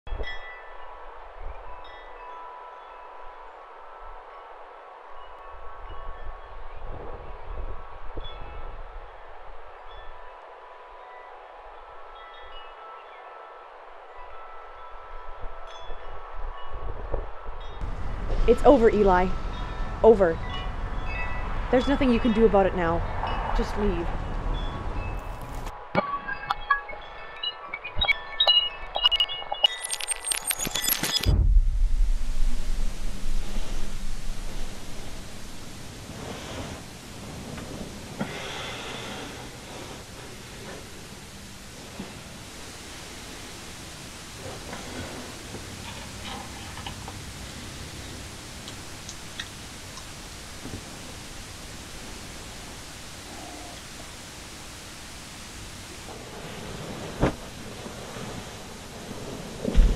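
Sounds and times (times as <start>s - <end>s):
rain hissing: 17.8s - 20.3s, 29.6s - 59.9s
glass shattering on pavement: 29.7s - 31.3s.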